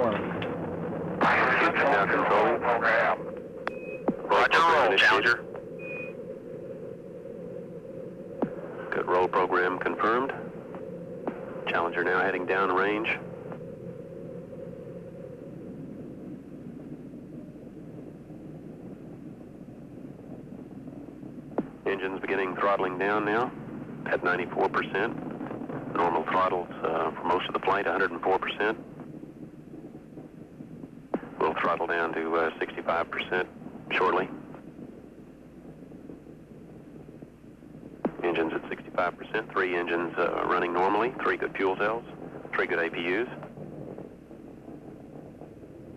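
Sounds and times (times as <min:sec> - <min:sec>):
muffled rocket roar: 0:00.0 - 0:45.9.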